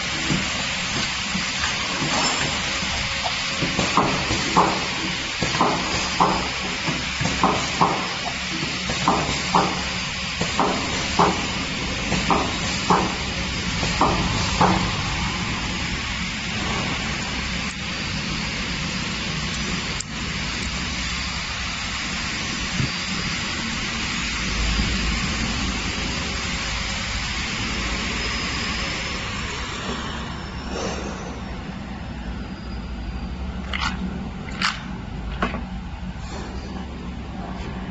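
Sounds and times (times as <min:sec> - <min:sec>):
machine hum: 0:00.0 - 0:37.9.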